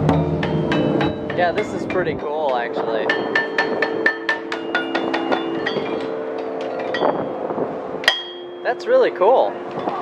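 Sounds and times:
metallophone notes struck with mallet: 0.0s - 9.9s.

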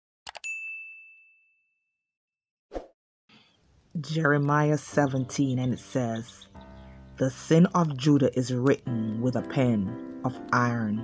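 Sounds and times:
notification bell ding: 0.3s - 1.6s.

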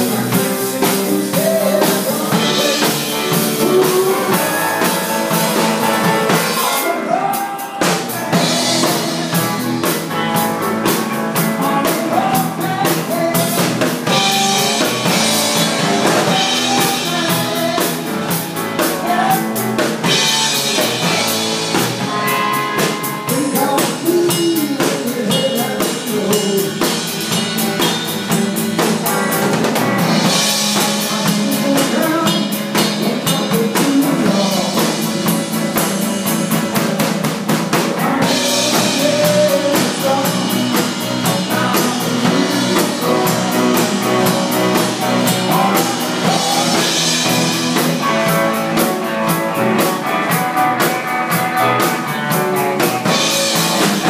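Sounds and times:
bass guitar: 0.0s - 54.0s
drum kit beat: 0.0s - 54.0s
electric guitar: 0.0s - 54.0s
electric keyboard: 0.0s - 54.0s.

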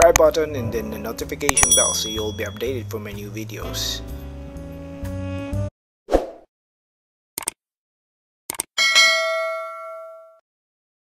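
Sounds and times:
notification bell ding: 1.5s - 2.8s, 8.8s - 10.4s.

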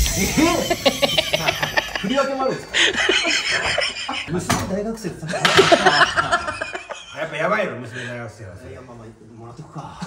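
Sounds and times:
people talking: 0.0s - 10.0s
laughter: 0.3s - 4.6s, 5.2s - 7.5s.

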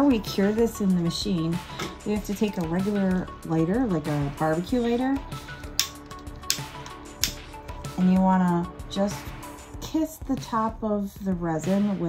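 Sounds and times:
background music: 0.0s - 12.0s
utility lighter trigger clicks: 5.6s - 7.6s.

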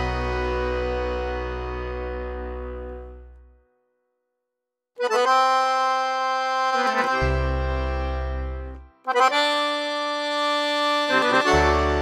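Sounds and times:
deep bass notes: 0.0s - 3.6s, 6.9s - 9.6s, 10.7s - 12.0s
accordion chord: 0.0s - 3.7s, 5.0s - 12.0s.

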